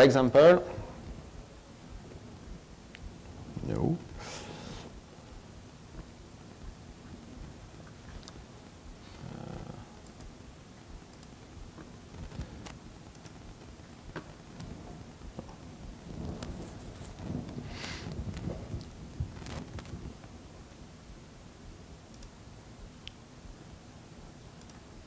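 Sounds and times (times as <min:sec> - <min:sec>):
person murmuring hmm: 0:09.0 - 0:10.0.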